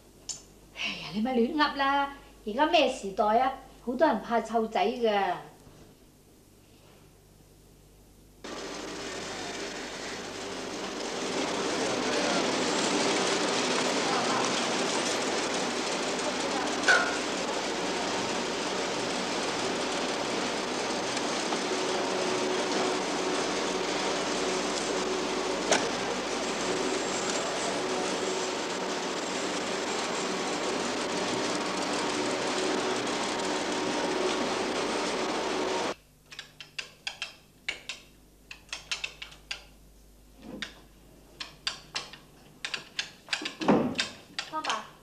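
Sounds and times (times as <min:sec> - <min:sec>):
faint mechanical hum: 0:00.0 - 0:45.0
abacus beads clicking: 0:36.3 - 0:39.7, 0:41.4 - 0:44.8.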